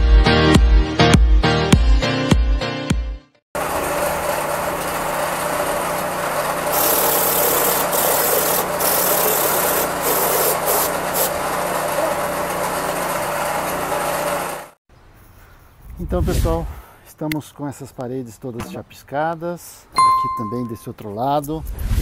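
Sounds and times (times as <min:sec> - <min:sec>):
machinery motor hum: 0:03.6 - 0:07.5, 0:10.9 - 0:14.7.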